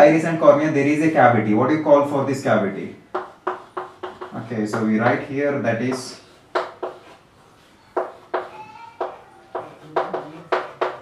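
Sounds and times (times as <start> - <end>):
chalk squeaking: 3.1 - 5.2, 5.8 - 11.0
chalk tapping on blackboard: 3.1 - 11.0.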